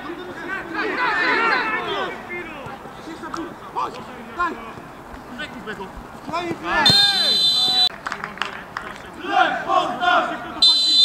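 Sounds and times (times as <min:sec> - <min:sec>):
men shouting: 0:00.0 - 0:07.9, 0:09.1 - 0:11.0
referee's whistle blast: 0:06.8 - 0:07.9, 0:10.6 - 0:11.0.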